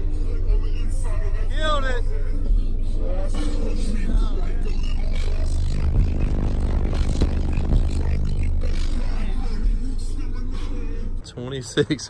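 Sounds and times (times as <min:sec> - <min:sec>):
subwoofer playing deep bass: 0:00.0 - 0:11.4.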